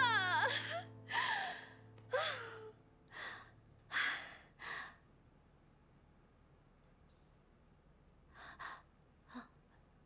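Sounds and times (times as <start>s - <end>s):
woman sighing: 0.0s - 4.5s.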